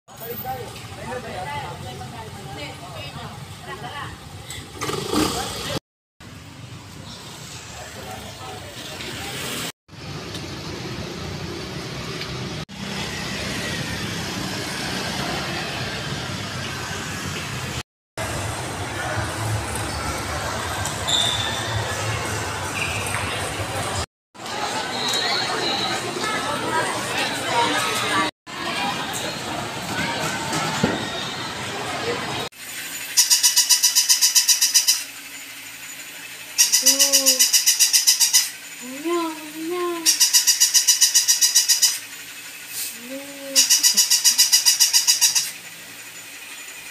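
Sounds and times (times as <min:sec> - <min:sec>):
road traffic: 0:00.1 - 0:46.9
toy motor gears clicking: 0:32.6 - 0:46.9.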